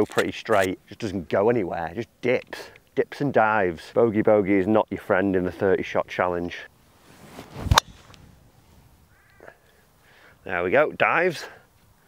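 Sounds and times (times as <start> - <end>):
golf club swing whoosh: 7.0 - 9.0
clubhead striking golf ball: 7.6 - 8.2.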